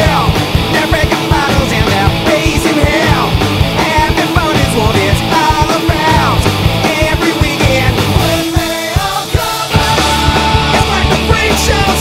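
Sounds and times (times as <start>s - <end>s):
punk rock band playing: 0.0s - 12.0s.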